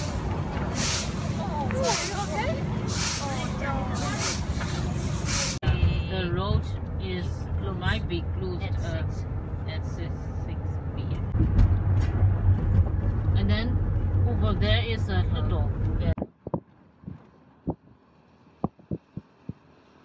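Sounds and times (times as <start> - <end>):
car engine and road rumble: 0.0 - 20.0
people talking: 1.2 - 11.3, 13.4 - 16.2.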